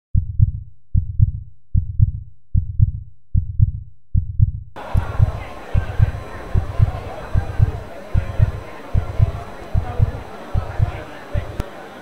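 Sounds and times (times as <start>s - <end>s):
heartbeat thuds: 0.2s - 11.6s
faint outdoor background: 4.8s - 12.0s.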